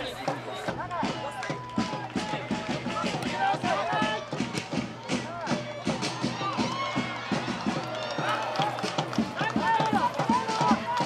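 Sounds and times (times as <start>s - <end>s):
crowd chanting and singing: 0.0s - 11.0s
steady drum beat: 0.0s - 11.0s.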